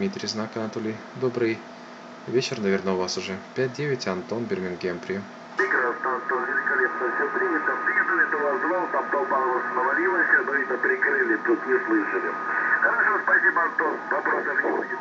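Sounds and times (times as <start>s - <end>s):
voice over shortwave radio: 5.6s - 15.0s.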